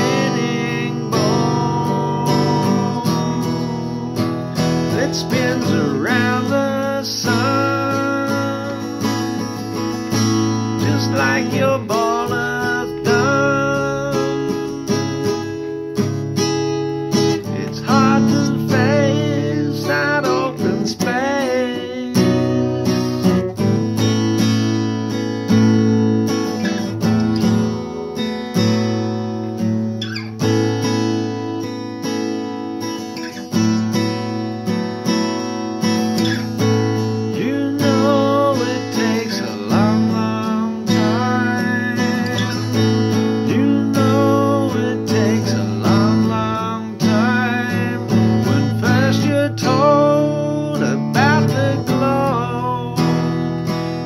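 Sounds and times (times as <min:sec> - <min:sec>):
man singing: 0:00.0 - 0:23.5, 0:36.2 - 0:54.0
acoustic guitar strumming: 0:00.0 - 0:54.0.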